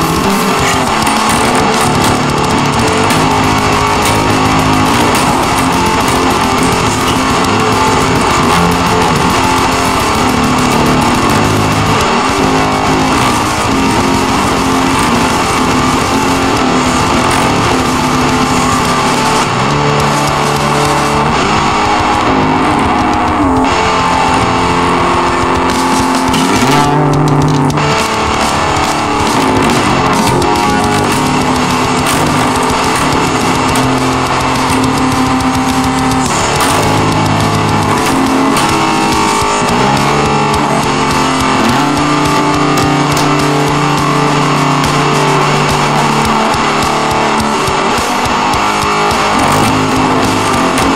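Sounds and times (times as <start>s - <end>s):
hard rock electric guitar music: 0.0s - 50.9s.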